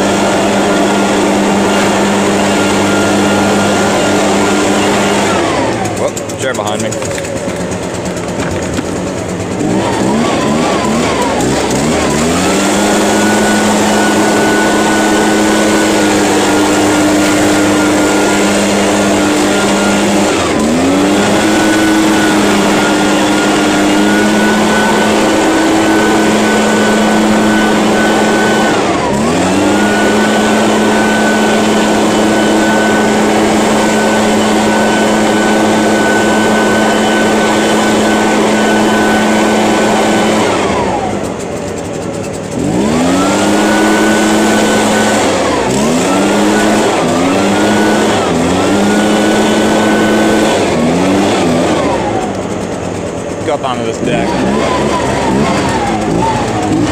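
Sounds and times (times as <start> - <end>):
leaf blower engine running: 0.0 - 56.9.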